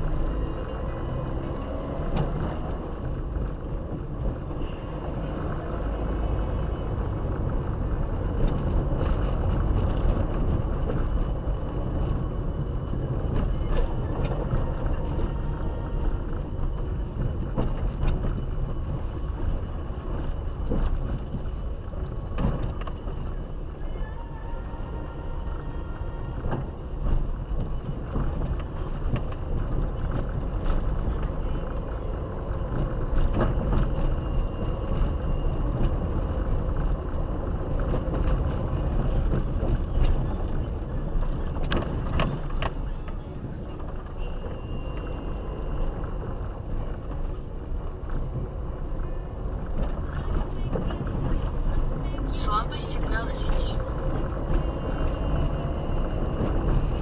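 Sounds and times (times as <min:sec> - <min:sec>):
engine and tyres rumbling: 0:00.0 - 0:57.0.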